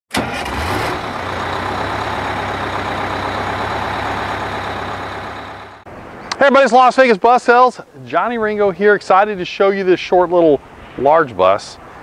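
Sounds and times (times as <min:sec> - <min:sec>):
large vehicle engine running: 0:00.1 - 0:05.9.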